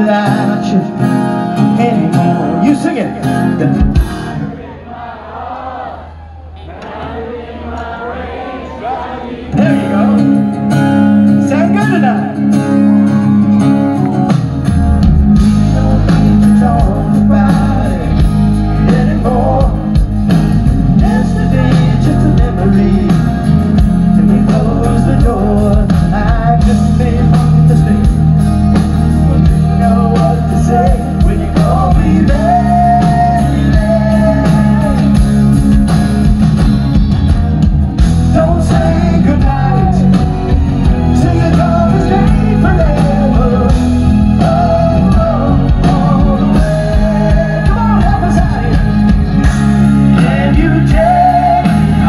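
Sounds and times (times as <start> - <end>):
man singing: 0.0 - 4.0, 9.5 - 12.4, 15.6 - 28.4, 29.3 - 35.5, 38.2 - 49.2, 49.8 - 52.0
bass guitar: 0.0 - 4.5, 9.5 - 52.0
rock band playing: 0.0 - 4.8, 9.5 - 52.0.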